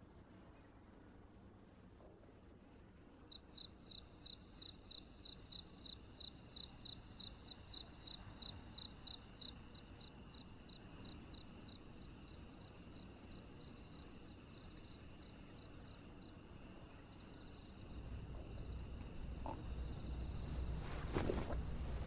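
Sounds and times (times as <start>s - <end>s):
cricket chirping: 3.3s - 22.0s
high insect trill: 3.3s - 22.0s.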